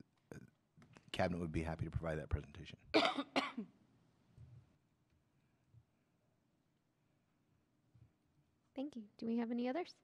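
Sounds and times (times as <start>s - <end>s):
faint room noise: 0.0s - 10.0s
person coughing: 3.0s - 3.8s.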